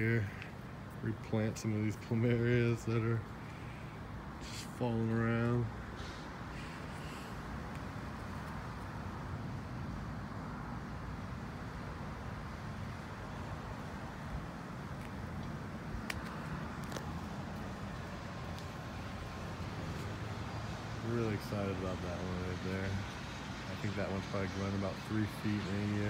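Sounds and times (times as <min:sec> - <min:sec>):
distant traffic rumble: 0:00.0 - 0:26.0.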